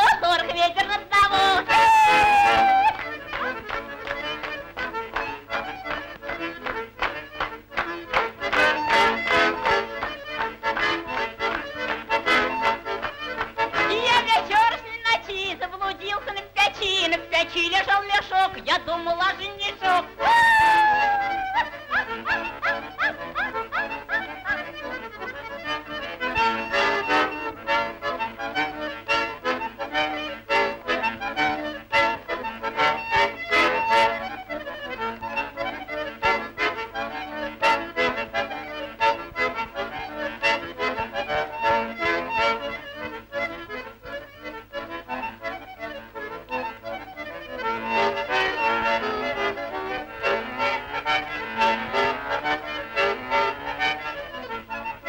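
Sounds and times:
accordion music: 0:00.0 - 0:55.0.

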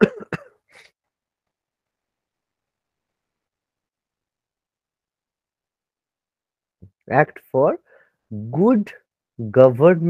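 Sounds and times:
man coughing: 0:00.0 - 0:00.7.

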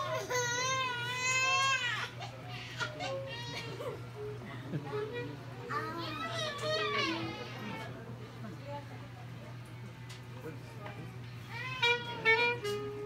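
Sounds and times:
faint voices: 0:00.0 - 0:13.0
child crying: 0:05.7 - 0:07.8.

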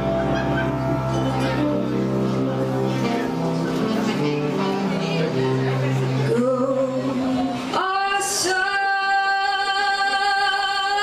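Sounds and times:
woman singing into microphone: 0:05.5 - 0:11.0.

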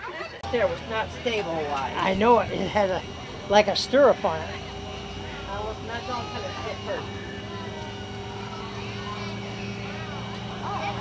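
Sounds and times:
steady engine hum: 0:00.0 - 0:11.0.

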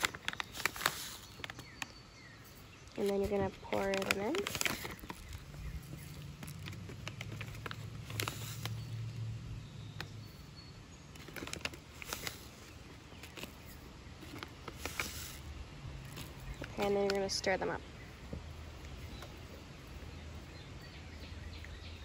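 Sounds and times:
plastic bag rustling: 0:00.0 - 0:09.4, 0:11.1 - 0:20.8.

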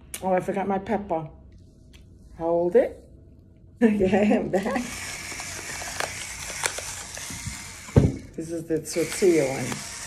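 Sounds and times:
electric pepper mill whirring: 0:04.6 - 0:10.0
peppercorns cracking: 0:04.8 - 0:10.0.

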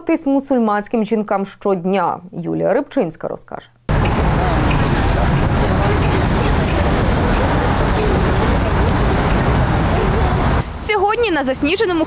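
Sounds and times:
faint babble of voices: 0:03.9 - 0:10.6
steady traffic noise: 0:03.9 - 0:12.0.

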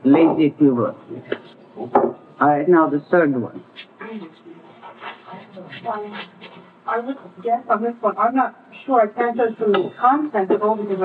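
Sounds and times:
person speaking: 0:00.0 - 0:11.0.

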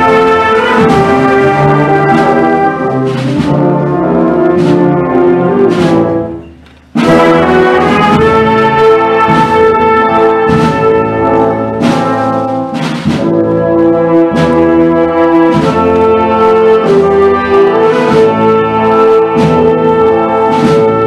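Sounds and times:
wind band playing funeral march: 0:00.0 - 0:21.0.

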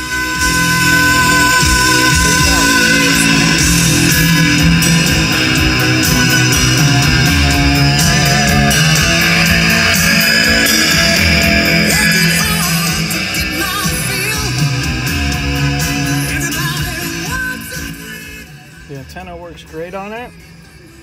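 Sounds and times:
heavy rock music on car stereo: 0:00.0 - 0:21.0.

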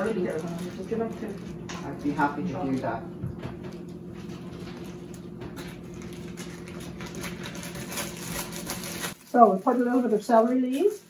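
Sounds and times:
steady low hum: 0:00.0 - 0:09.7.

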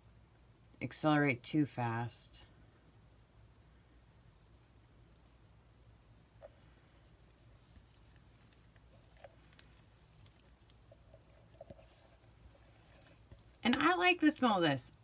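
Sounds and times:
faint room hum: 0:00.0 - 0:15.0.

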